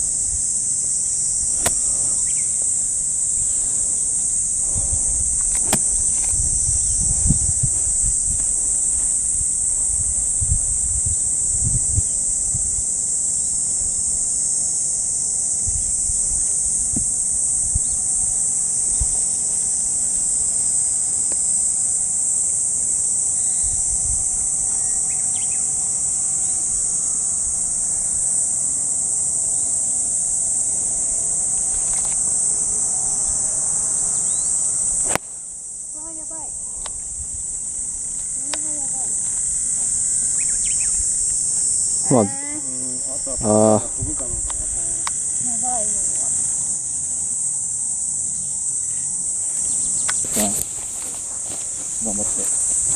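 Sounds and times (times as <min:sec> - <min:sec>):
high-pitched insect chorus: 0:00.0 - 0:52.9
wind rumble on microphone: 0:04.4 - 0:13.1, 0:15.5 - 0:19.2, 0:23.6 - 0:24.6, 0:43.3 - 0:45.1.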